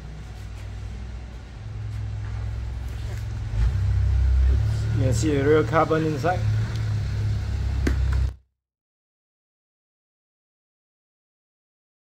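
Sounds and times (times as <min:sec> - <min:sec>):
engine hum: 0:00.0 - 0:08.4.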